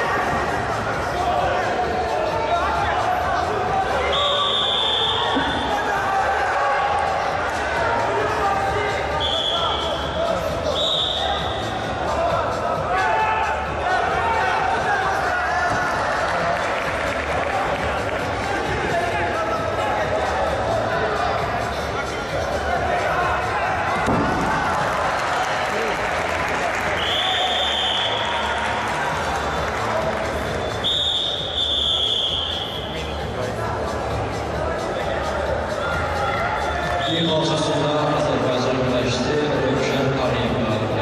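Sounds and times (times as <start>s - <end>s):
high whistle blasts: 4.1s - 5.7s, 9.2s - 10.0s, 10.7s - 11.5s, 27.0s - 28.4s, 30.6s - 32.9s
crowd applauding: 15.9s - 19.0s, 23.8s - 31.1s.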